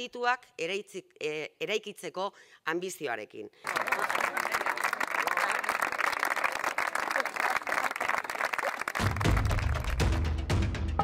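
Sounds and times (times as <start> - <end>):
people applauding: 3.6 - 10.3
music with deep drum beat: 9.0 - 11.0.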